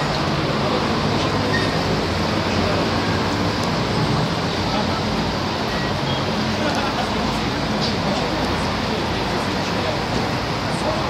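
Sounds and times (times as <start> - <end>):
road traffic rumble and hiss: 0.0 - 11.0.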